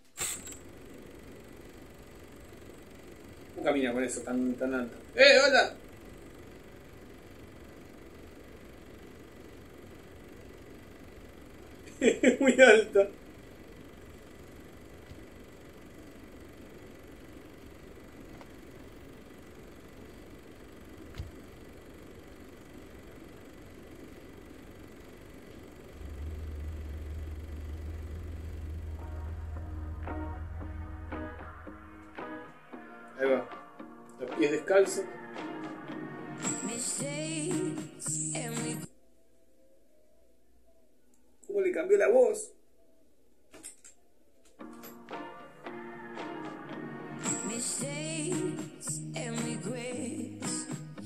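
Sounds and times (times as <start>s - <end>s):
low car-like rumble: 24.3s - 32.3s
loud deep hum: 25.6s - 32.8s
musical notes: 26.0s - 36.8s.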